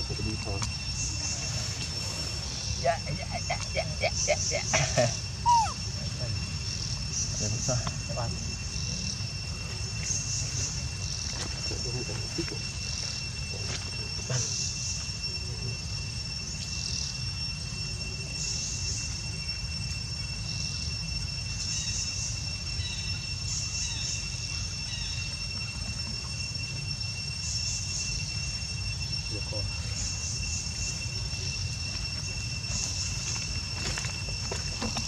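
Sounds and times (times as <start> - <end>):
insects buzzing: 0.0 - 35.0
insects droning: 0.0 - 35.0.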